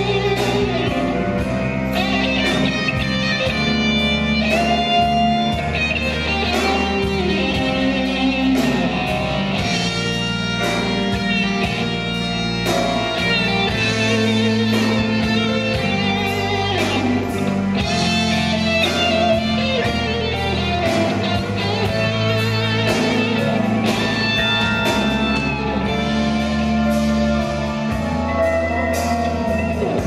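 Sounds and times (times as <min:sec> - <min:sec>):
bass notes: 0:00.0 - 0:30.0
electric guitar lead melody: 0:00.0 - 0:30.0.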